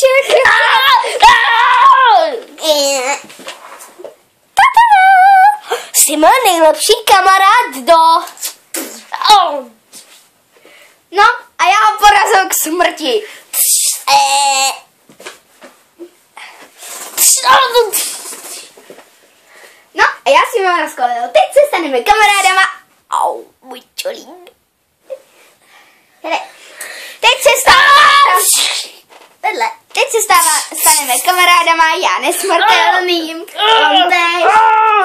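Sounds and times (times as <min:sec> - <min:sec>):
child crying out: 0:00.3 - 0:02.4, 0:33.6 - 0:35.0
child making dog-like whine: 0:33.6 - 0:35.0.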